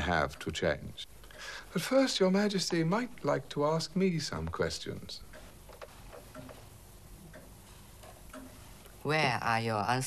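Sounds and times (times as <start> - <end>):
clock ticking faintly: 5.2 - 9.0.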